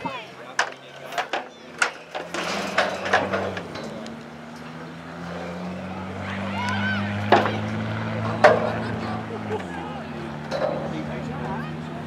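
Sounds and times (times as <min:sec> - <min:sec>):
low engine hum: 0:00.0 - 0:12.0
people shouting: 0:05.8 - 0:10.4.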